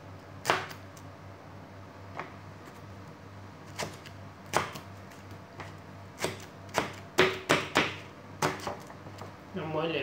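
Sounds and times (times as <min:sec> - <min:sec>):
knife chopping on plastic board: 0:00.4 - 0:00.8, 0:03.7 - 0:04.9, 0:05.6 - 0:09.3.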